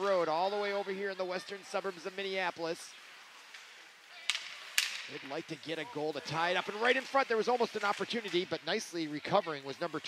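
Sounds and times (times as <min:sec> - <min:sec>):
faint ice rink hum: 0:00.0 - 0:10.0
hockey sticks hitting puck: 0:03.0 - 0:08.6.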